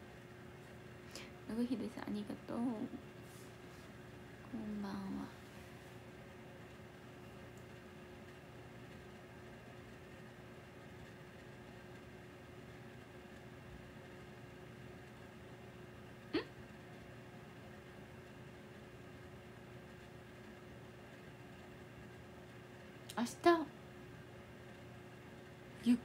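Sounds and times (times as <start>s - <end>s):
faint steady hum: 0.0s - 26.0s.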